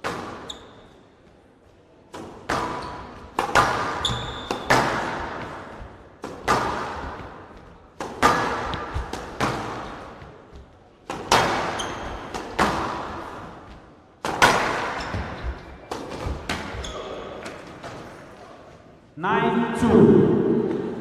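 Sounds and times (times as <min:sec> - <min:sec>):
squash ball hitting rackets: 0:00.0 - 0:00.8, 0:02.1 - 0:18.0
shoes squeaking on court floor: 0:00.2 - 0:05.9, 0:08.6 - 0:13.9, 0:14.7 - 0:18.8
ball slapping against walls: 0:02.1 - 0:18.0.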